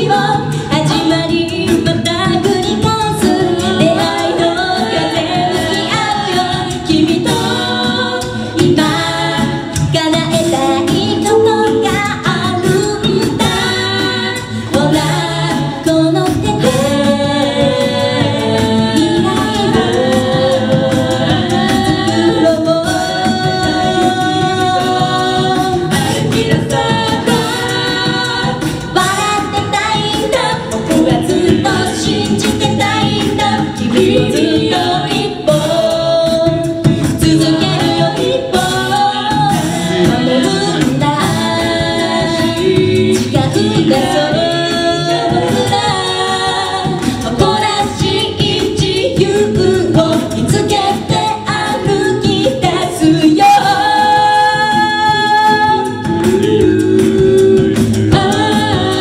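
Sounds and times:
a cappella group singing: 0.0 - 59.0
sung bass line: 0.0 - 59.0.

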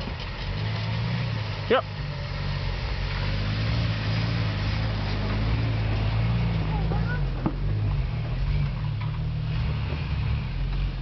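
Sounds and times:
car engine running at low revs: 0.0 - 11.0.

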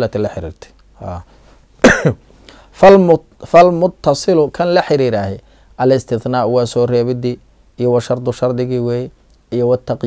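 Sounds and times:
man speaking: 0.0 - 1.3, 2.8 - 10.0
man coughing: 1.8 - 2.3.

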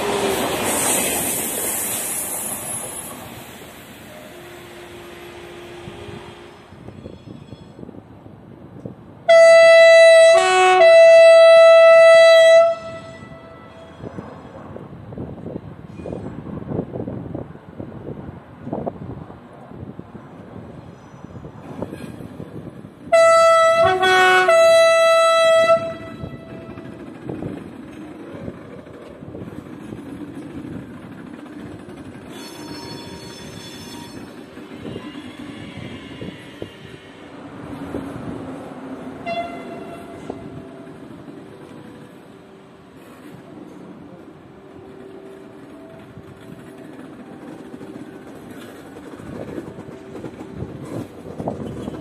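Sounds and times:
train rumbling over tracks: 0.0 - 52.0
two-tone train horn: 4.1 - 7.6, 9.2 - 14.2, 23.1 - 26.9, 32.3 - 37.4, 39.2 - 40.9
faint high squeal: 6.2 - 7.9, 13.6 - 14.7, 20.8 - 22.2, 32.3 - 37.3.

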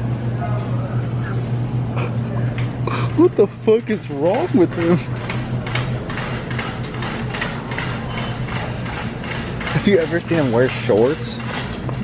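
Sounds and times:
steady low hum: 0.0 - 12.0
shopping cart rattling: 3.7 - 12.0.

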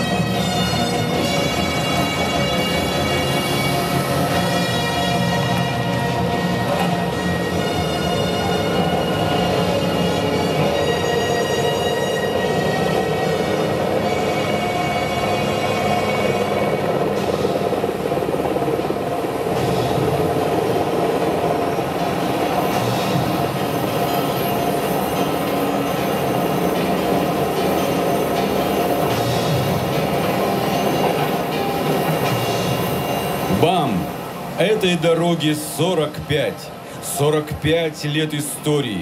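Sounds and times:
steady drone over loudspeakers: 0.0 - 39.0.

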